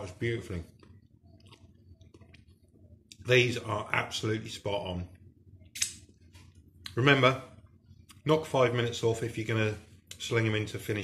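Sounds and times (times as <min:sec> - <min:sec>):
wet chewing mouth clicks: 0:00.7 - 0:03.2.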